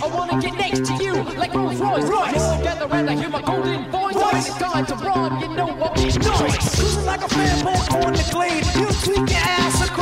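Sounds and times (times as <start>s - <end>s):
hip-hop beat: 0.0s - 10.0s
turntable scratching: 6.0s - 10.0s.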